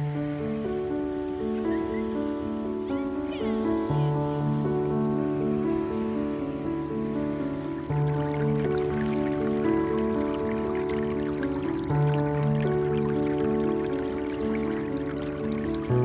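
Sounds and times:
calm background music: 0.0 - 16.0.

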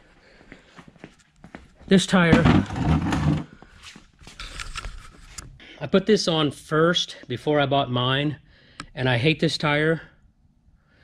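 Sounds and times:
man speaking: 1.9 - 2.8, 5.7 - 10.2
camera handling rustling: 4.2 - 5.6.

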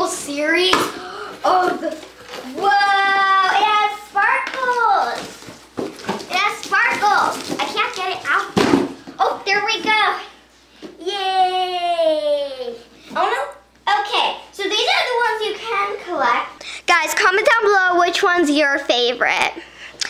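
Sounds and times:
girl talking excitedly: 0.0 - 5.3, 6.3 - 8.6, 9.2 - 10.4, 11.0 - 19.6
knocks on cardboard box: 8.6 - 9.0.

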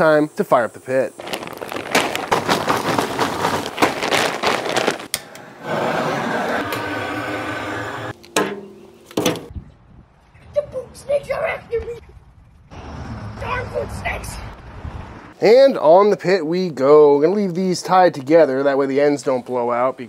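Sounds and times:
gas torch hissing: 5.6 - 8.2.

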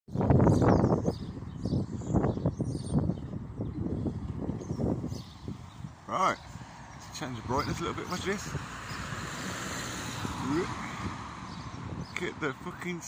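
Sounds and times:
low rumbling on microphone: 0.1 - 12.5.

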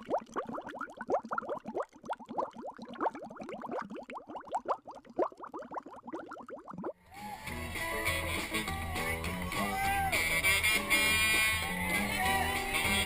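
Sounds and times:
bubbling plops: 0.0 - 7.0.

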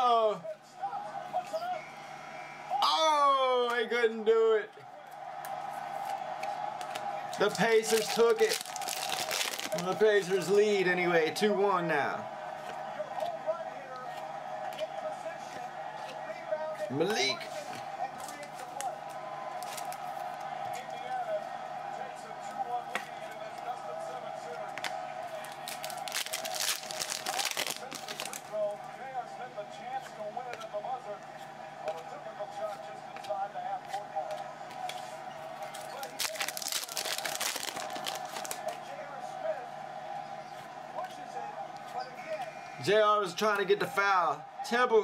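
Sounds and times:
plastic and foil crinkling: 7.4 - 10.4, 19.6 - 20.5, 25.4 - 28.6, 35.6 - 38.8.

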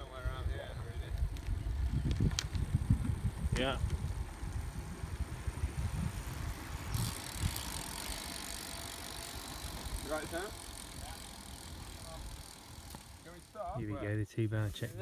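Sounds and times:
wind buffeting microphone: 0.0 - 8.7.

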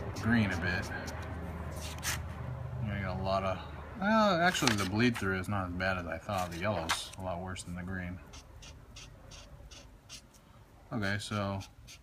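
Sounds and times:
marker scratching on paper: 0.0 - 2.4, 4.5 - 5.4, 6.3 - 7.2, 8.1 - 10.5, 11.3 - 12.0.

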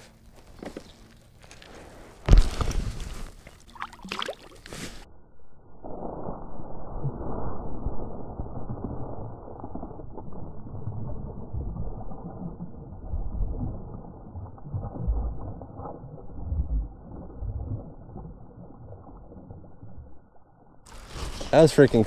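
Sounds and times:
fish thrashing in water: 2.3 - 4.8, 7.3 - 20.2.

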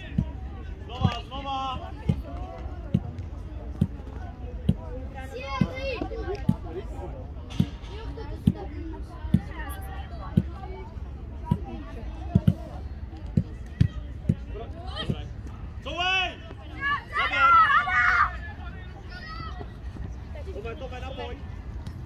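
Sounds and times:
distant shouting voices: 14.8 - 19.9.

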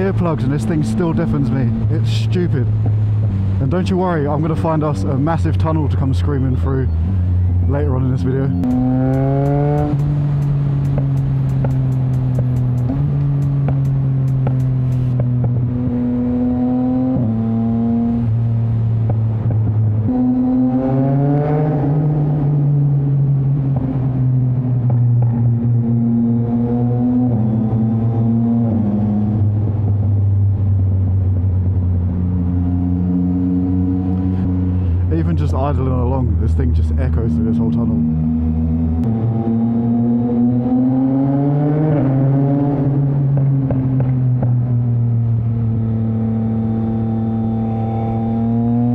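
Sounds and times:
motorcycle engine revving: 8.5 - 30.1, 31.8 - 35.2, 37.6 - 48.9
rapid sharp ticks: 8.6 - 15.2.

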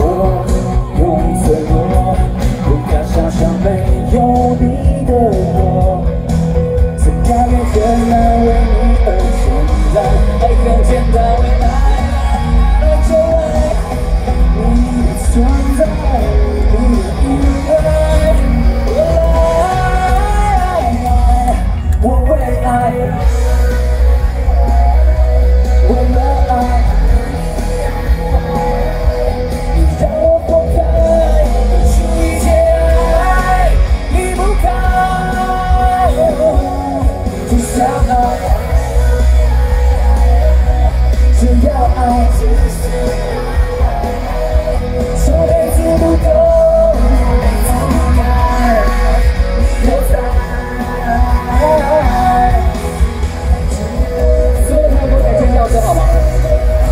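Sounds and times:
man singing: 0.0 - 56.9
rock band playing: 0.0 - 56.9.

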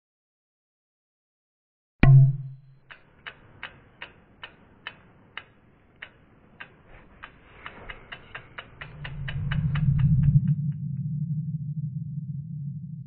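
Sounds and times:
clock-like ticks: 2.0 - 11.1
low drone: 6.8 - 13.0.

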